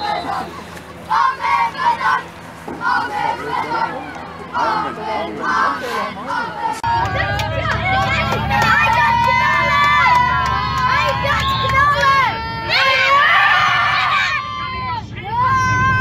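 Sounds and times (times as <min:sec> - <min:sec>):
boys chanting in unison: 0:00.0 - 0:10.1
boys shouting: 0:00.0 - 0:16.0
coach engine hum: 0:00.0 - 0:16.0.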